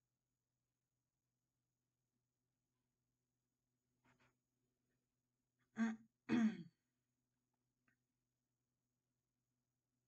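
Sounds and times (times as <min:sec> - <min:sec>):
woman clearing her throat: 0:05.8 - 0:06.8.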